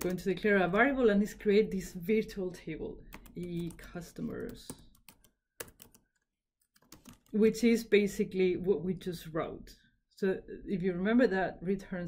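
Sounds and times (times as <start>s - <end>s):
keyboard typing: 3.1s - 7.4s.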